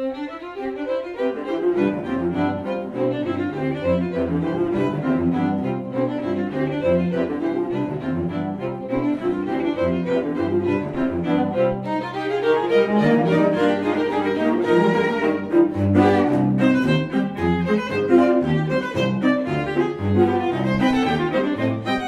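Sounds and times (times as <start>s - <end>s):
cello playing: 0.0s - 22.0s
violins and viola playing: 0.0s - 22.0s.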